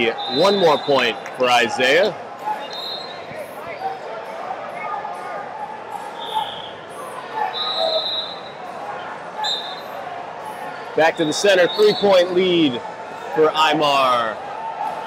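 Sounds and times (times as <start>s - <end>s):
spectators chattering: 0.0s - 15.0s.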